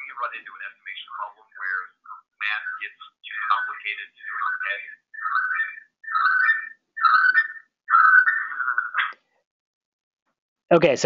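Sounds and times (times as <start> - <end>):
audio feedback: 0.0 - 9.2
tinny garbled voice: 0.0 - 9.2.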